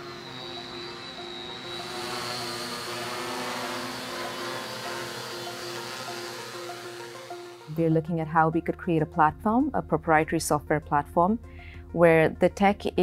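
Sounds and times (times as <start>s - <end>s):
drone propellers whirring: 0.0s - 7.8s
high motor whine: 0.0s - 7.8s
background music: 0.0s - 13.0s.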